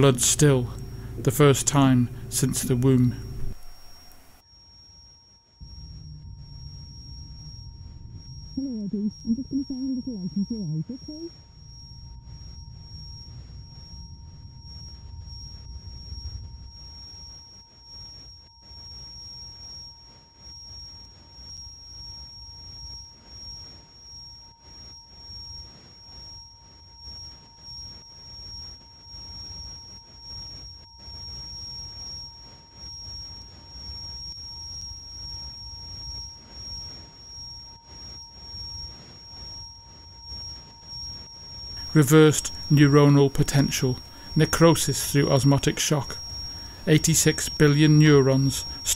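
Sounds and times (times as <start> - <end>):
pulsing low rumble: 0.0 - 4.2, 5.6 - 16.8
electronic drone tones: 0.0 - 4.4, 5.6 - 16.0, 41.2 - 48.9.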